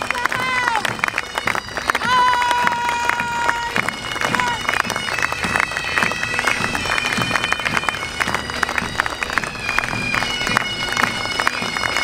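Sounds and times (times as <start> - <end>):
bagpipe drones: 0.0 - 12.0
bagpipes playing: 0.0 - 12.0.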